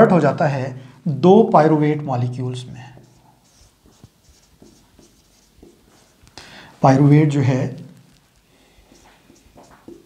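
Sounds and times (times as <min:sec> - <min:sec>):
marker pen writing on whiteboard: 0:02.6 - 0:10.0.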